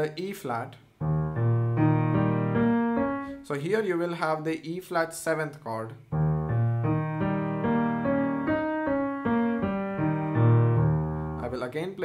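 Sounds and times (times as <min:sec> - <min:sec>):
piano arpeggio: 0:01.0 - 0:03.4, 0:06.1 - 0:11.5.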